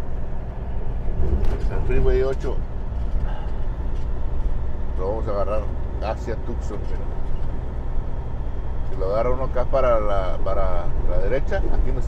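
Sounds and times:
diesel truck engine drone: 0:00.0 - 0:12.0
road noise: 0:00.0 - 0:12.0.

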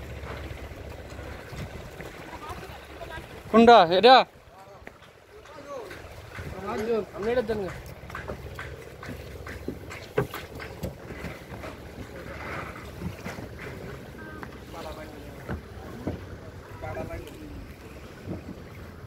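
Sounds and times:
low steady rumble: 0:00.0 - 0:19.0
people chatting: 0:02.2 - 0:04.8, 0:05.4 - 0:07.8, 0:13.8 - 0:17.7
sharp knocks: 0:05.5 - 0:11.4.

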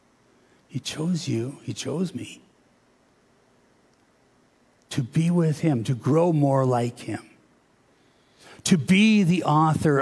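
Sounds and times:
man speaking: 0:00.7 - 0:02.5, 0:04.9 - 0:07.4, 0:08.6 - 0:10.0.

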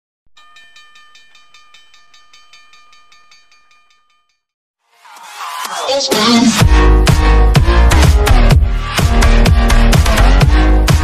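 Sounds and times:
bell ringing rapidly: 0:00.4 - 0:04.4.

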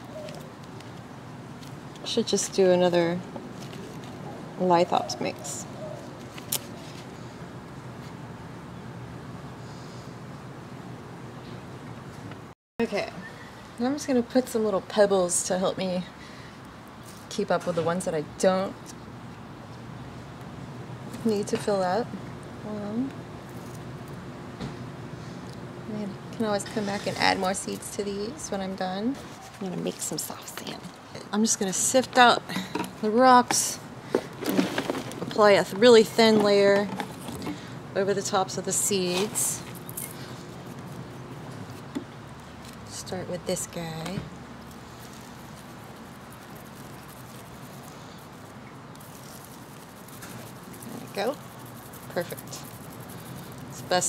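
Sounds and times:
soil rustling through sieve: 0:34.4 - 0:37.4, 0:44.7 - 0:54.0.

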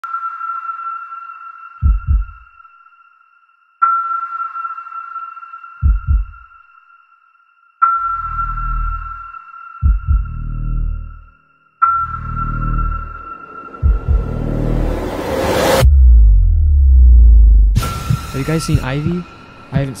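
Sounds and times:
low heartbeat-like thumps: 0:01.8 - 0:02.5, 0:05.8 - 0:06.5, 0:09.8 - 0:11.2, 0:12.2 - 0:19.2
high sonar-like ping: 0:11.8 - 0:15.9
low rumble: 0:12.2 - 0:19.0.

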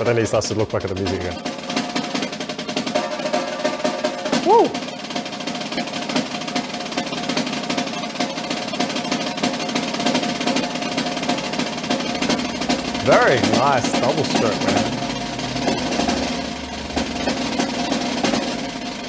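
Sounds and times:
snare drum roll: 0:00.0 - 0:19.0
man whooping: 0:04.3 - 0:04.9.

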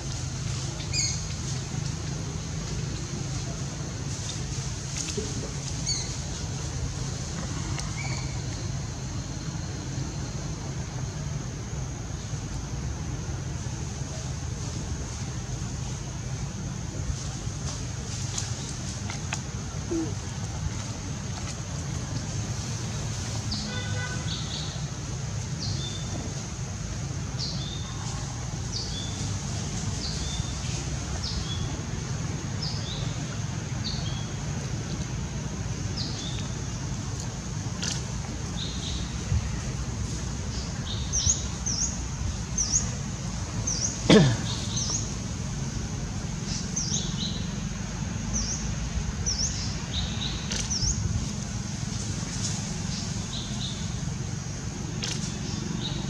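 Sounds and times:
steady high hiss: 0:00.0 - 0:56.0
birds chirping: 0:00.2 - 0:03.7, 0:43.6 - 0:45.3, 0:48.3 - 0:51.1, 0:52.4 - 0:54.4.

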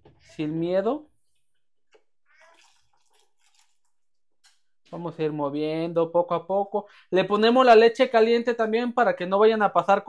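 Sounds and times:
milk trickling and splashing: 0:02.0 - 0:04.9.

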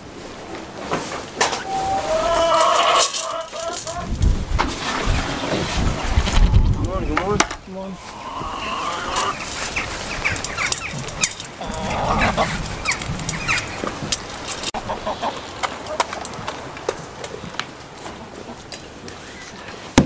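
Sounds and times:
rustling: 0:00.0 - 0:20.0
chickens clucking: 0:01.2 - 0:05.2, 0:06.1 - 0:19.7.

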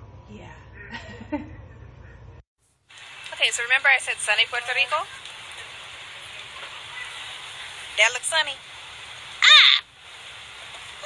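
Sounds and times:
outdoor background hiss: 0:02.6 - 0:11.0.

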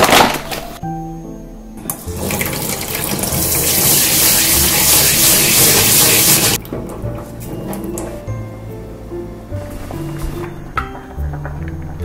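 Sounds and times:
tap water running onto rice: 0:01.9 - 0:06.6.

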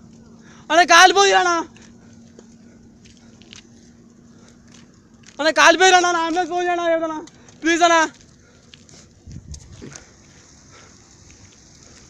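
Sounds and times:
fire crackling: 0:00.0 - 0:12.0.

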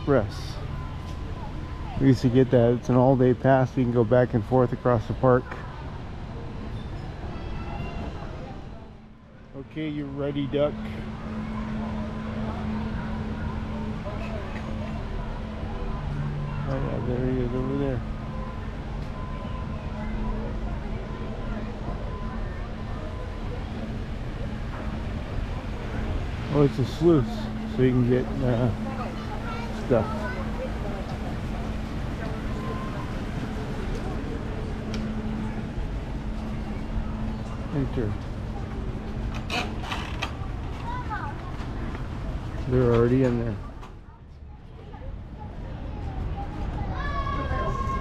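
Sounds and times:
faint indistinct voices: 0:00.0 - 0:48.0
outdoor background noise: 0:00.0 - 0:48.0
steady low hum: 0:08.2 - 0:46.5.

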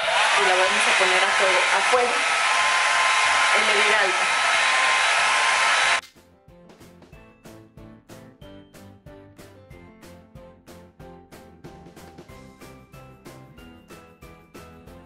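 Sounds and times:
hair dryer running: 0:00.0 - 0:06.0
background music with steady beat: 0:06.0 - 0:15.0.

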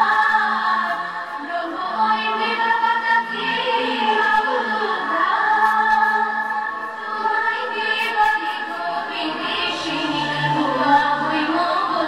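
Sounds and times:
women singing together: 0:00.0 - 0:12.0.

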